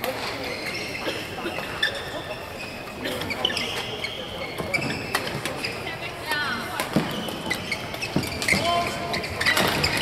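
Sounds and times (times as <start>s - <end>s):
shoes squeaking on court floor: 0.0s - 10.0s.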